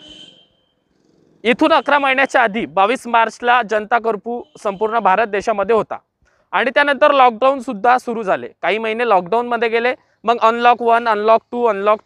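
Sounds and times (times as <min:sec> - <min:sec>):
man narrating: 0:01.4 - 0:12.0.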